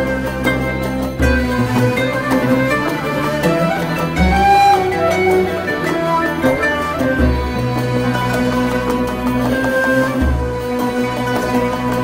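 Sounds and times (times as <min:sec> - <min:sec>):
instrumental background music: 0:00.0 - 0:12.0.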